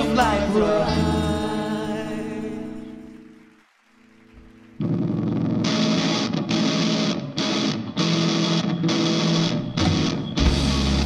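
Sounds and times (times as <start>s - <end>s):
electric guitar chords: 0.0s - 3.5s, 4.3s - 11.0s
rock band playing: 4.8s - 11.0s.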